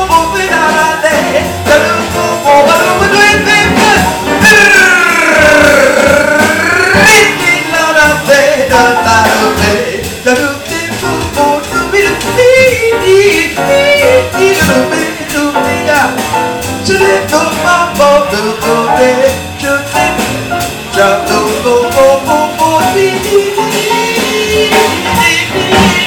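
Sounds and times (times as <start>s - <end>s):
jazz band with drums: 0.0s - 26.0s.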